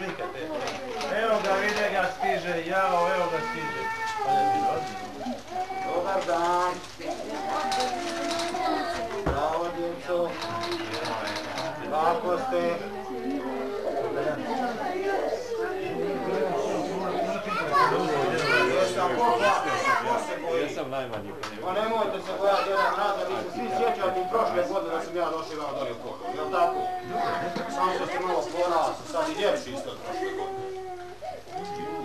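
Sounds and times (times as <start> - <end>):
children calling out: 3.0 - 6.3, 7.0 - 9.3, 10.3 - 20.4, 26.3 - 29.6.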